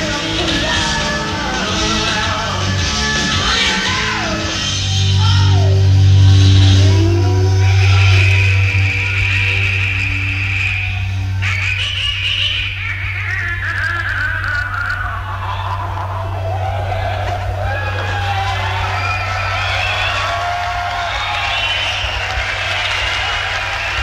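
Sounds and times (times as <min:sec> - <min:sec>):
bass guitar low note: 0:00.0 - 0:12.0, 0:15.2 - 0:21.2
person singing: 0:00.0 - 0:16.4
electric guitar: 0:00.0 - 0:24.0.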